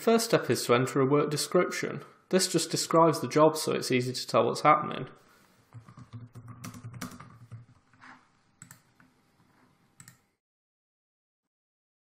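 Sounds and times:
typing on computer keyboard: 5.8 - 7.8, 8.6 - 8.9, 10.0 - 10.2.

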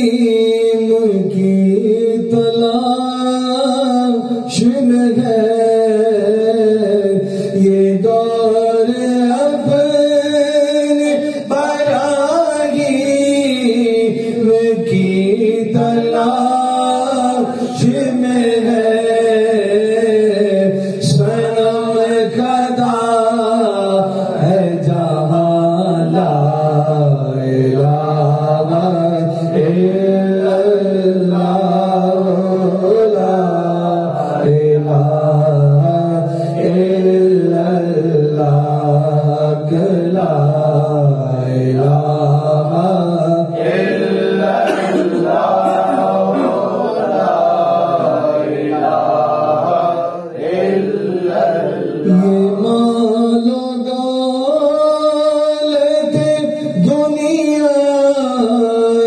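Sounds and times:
men chanting unaccompanied: 11.6 - 53.4.

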